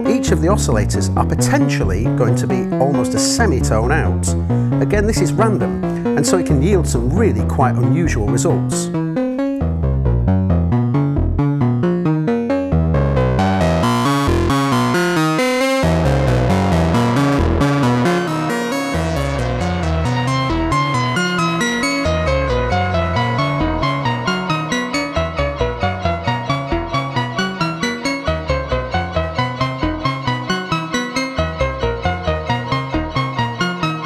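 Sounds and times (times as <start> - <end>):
detuned synthesizer sequence: 12.7 - 30.6.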